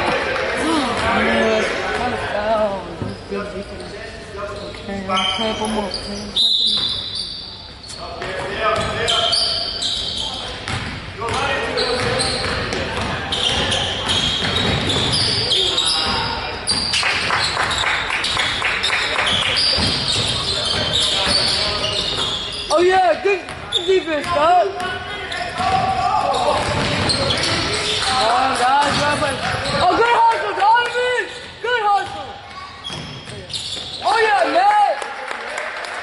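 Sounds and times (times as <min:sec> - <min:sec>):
sneakers squeaking: 0:00.0 - 0:30.2, 0:30.8 - 0:34.5
voices of players and spectators: 0:00.0 - 0:36.0
basketball dribbling: 0:19.4 - 0:22.3, 0:25.6 - 0:27.8, 0:28.8 - 0:29.8.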